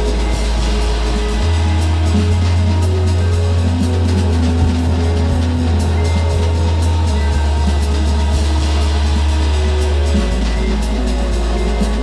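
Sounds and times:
deep bass line: 0.0s - 12.0s
faint high percussion ticks: 0.0s - 12.0s.

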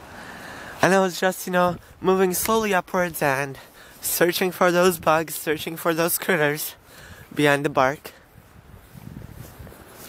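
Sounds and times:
footsteps on paved path: 0.1s - 10.0s.

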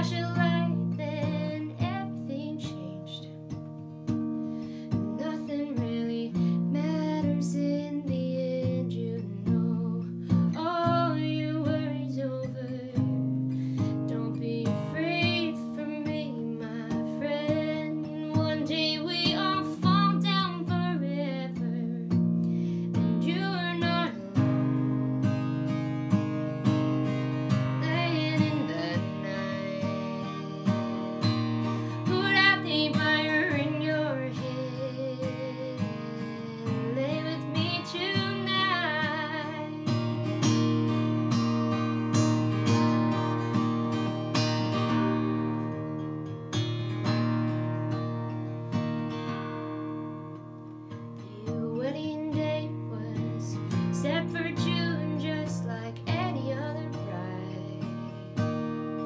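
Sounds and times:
woman singing with vibrato: 0.0s - 3.3s, 5.1s - 13.4s, 14.1s - 22.2s, 23.0s - 25.2s, 27.7s - 40.8s, 51.3s - 58.1s
strummed acoustic guitar: 0.0s - 59.0s.

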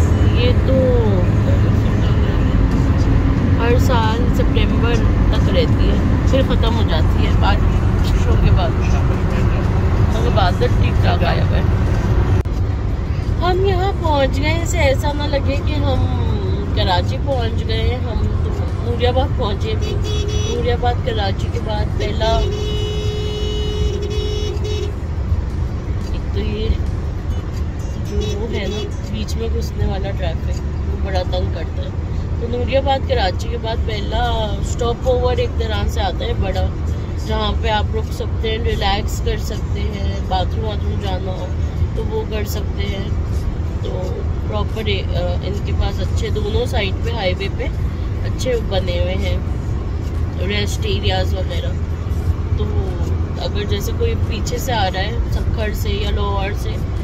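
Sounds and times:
woman speaking: 0.0s - 2.8s, 3.6s - 9.1s, 10.1s - 11.7s, 13.3s - 22.6s, 26.1s - 26.9s, 28.0s - 43.2s, 43.8s - 49.5s, 50.4s - 51.8s, 52.6s - 56.8s
car road rumble: 0.0s - 57.0s.

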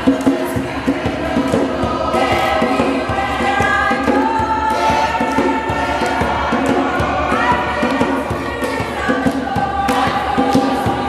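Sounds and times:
choir singing gospel: 0.0s - 11.0s
steady beat: 0.0s - 11.0s.

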